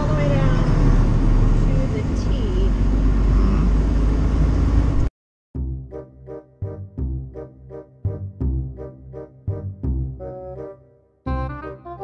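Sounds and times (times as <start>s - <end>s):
truck engine rumble inside cab: 0.0s - 5.1s
keyboard music: 5.6s - 12.0s.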